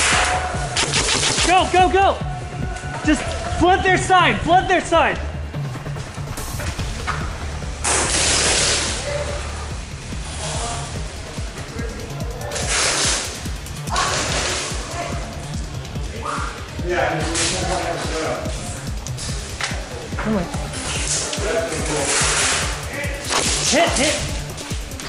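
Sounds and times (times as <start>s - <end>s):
background music with beat: 0.0s - 25.0s
airsoft guns firing bursts: 0.8s - 1.9s.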